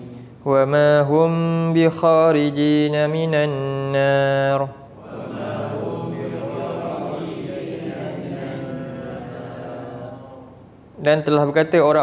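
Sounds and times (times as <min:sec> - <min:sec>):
man chanting melodically: 0:00.4 - 0:12.0.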